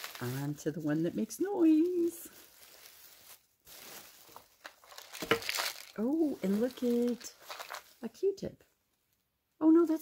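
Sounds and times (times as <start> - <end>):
tissue paper crinkling: 0.0 - 8.1.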